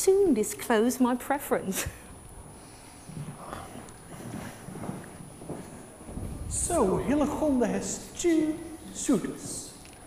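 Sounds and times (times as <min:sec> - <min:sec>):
faint footsteps on hard floor: 0:02.4 - 0:09.8.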